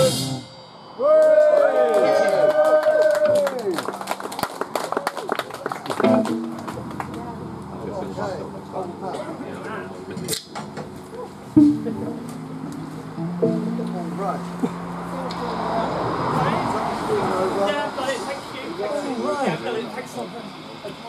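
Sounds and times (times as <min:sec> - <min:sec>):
crowd voices: 0:01.0 - 0:21.0
scattered clapping: 0:01.2 - 0:07.4
punk band chord: 0:06.0 - 0:08.0, 0:11.6 - 0:15.4
amplifier hum: 0:11.1 - 0:16.0
bass guitar note: 0:11.1 - 0:16.4.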